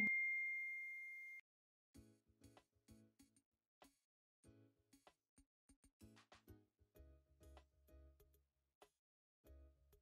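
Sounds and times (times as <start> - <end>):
high electronic chime tone: 0.0 - 1.4.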